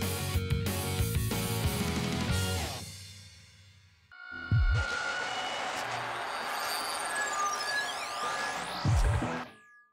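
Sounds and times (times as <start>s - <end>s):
high tone sweeping downward: 4.2s - 9.9s.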